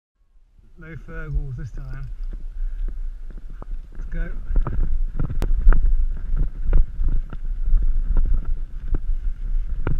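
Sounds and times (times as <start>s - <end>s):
mountain bike rumbling on gravel: 1.0s - 9.9s.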